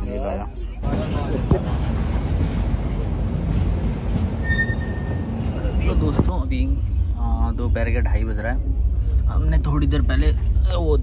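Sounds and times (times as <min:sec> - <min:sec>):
train rumbling on rails: 0:00.3 - 0:11.0.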